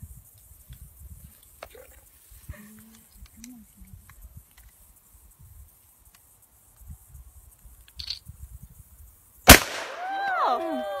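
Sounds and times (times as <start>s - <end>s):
loud gunshot: 9.5s - 10.0s
voices crying out: 10.0s - 11.0s.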